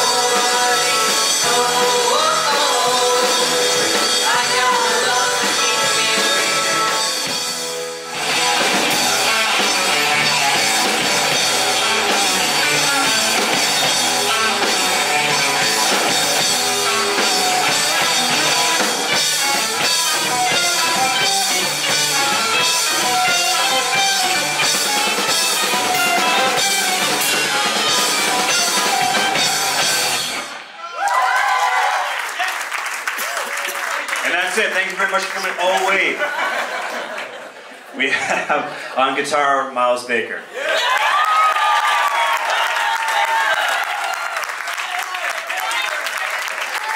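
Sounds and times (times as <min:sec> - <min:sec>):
live rock band playing: 0:00.0 - 0:30.8
audience cheering and clapping: 0:08.2 - 0:37.8, 0:40.5 - 0:46.9.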